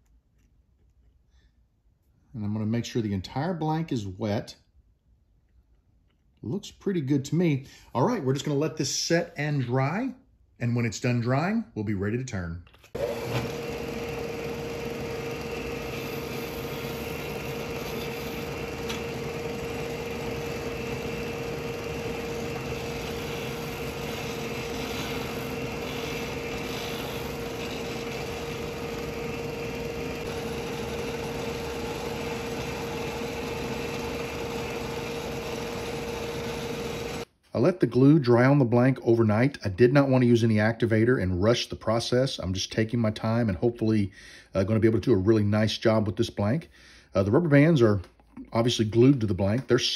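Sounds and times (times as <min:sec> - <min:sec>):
disc sander motor humming: 0:13.0 - 0:37.2.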